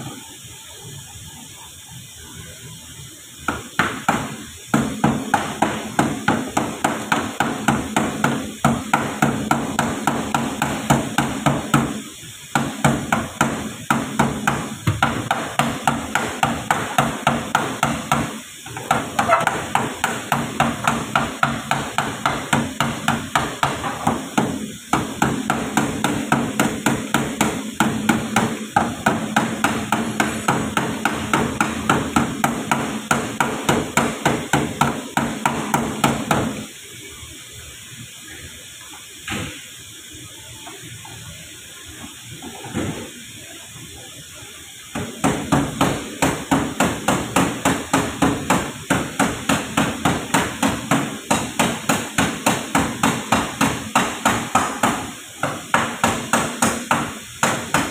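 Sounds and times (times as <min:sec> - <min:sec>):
hand hammering: 0:03.5 - 0:36.6, 0:44.9 - 0:57.9.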